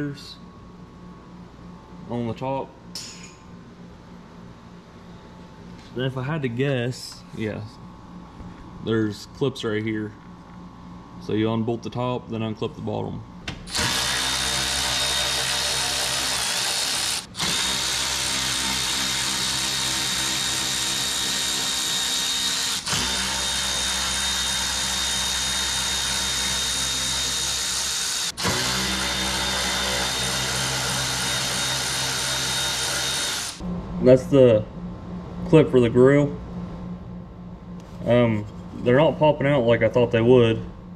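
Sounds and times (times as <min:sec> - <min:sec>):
cordless electric ratchet whirring: 0:13.7 - 0:33.6.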